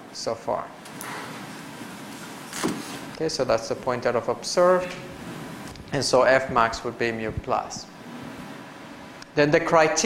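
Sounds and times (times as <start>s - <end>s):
lecture hall background hiss: 0.0s - 10.0s.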